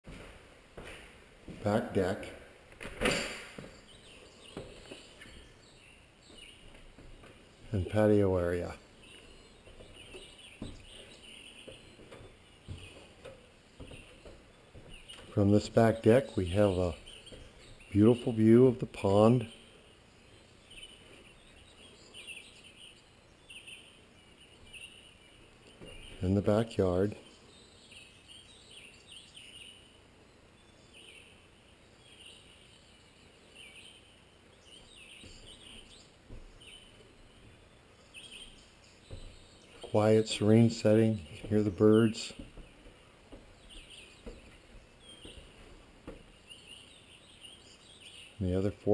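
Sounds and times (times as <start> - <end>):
birds chirping: 0.0 - 48.9
outdoor background noise: 0.0 - 48.9
soft thumps: 41.2 - 46.4.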